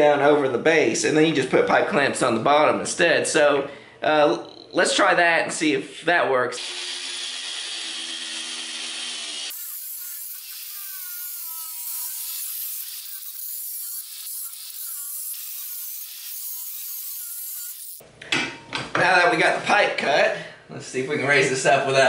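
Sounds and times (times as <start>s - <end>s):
angle grinder cutting metal pipe: 6.6s - 18.0s
grinder squealing: 6.6s - 18.0s.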